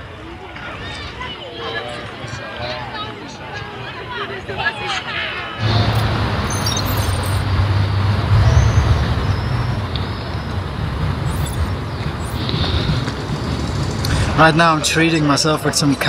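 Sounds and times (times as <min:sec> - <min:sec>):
street traffic noise: 0:00.0 - 0:16.0
vehicle engine rumble: 0:05.6 - 0:15.4.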